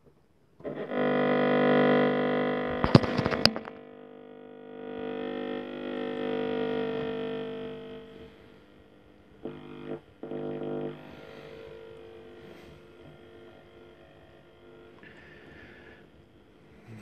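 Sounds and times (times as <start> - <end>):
radio music: 0.7 - 8.6, 9.4 - 16.0.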